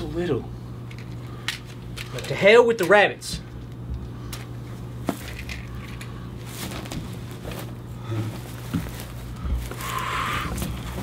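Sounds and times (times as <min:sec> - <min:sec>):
steady low hum: 0:00.0 - 0:11.0
handling and rustling: 0:04.3 - 0:11.0.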